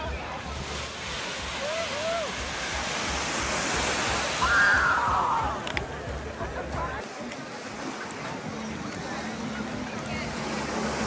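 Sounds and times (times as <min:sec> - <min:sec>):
small waves washing onto beach: 0:00.0 - 0:11.0.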